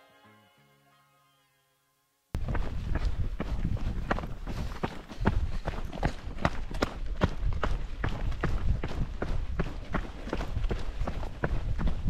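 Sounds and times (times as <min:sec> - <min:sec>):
footsteps running on rocky trail: 0:02.4 - 0:12.0.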